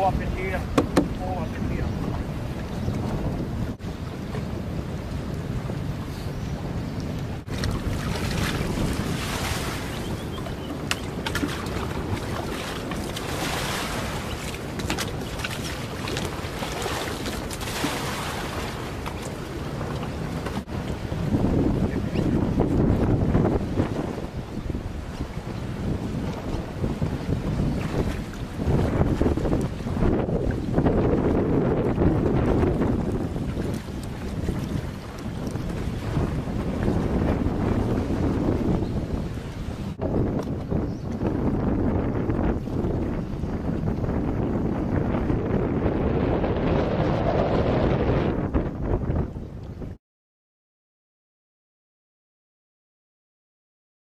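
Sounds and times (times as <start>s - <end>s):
water splashing and sloshing: 0.0s - 41.3s
wind buffeting microphone: 0.0s - 50.0s.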